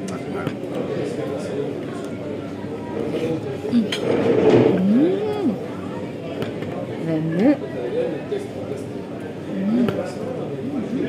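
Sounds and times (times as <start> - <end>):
people talking in background: 0.0 - 11.0.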